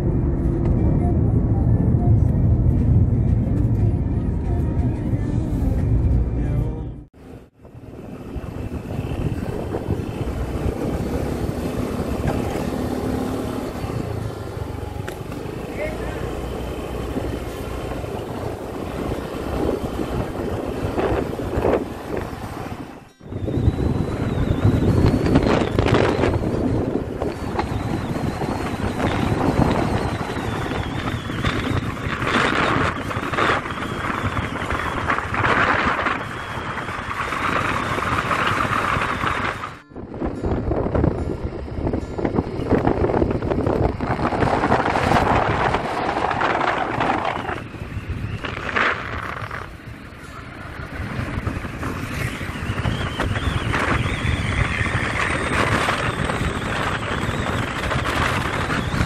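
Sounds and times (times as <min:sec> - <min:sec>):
motorcycle running: 0:00.0 - 0:59.0
wind noise on microphone: 0:00.0 - 0:59.0.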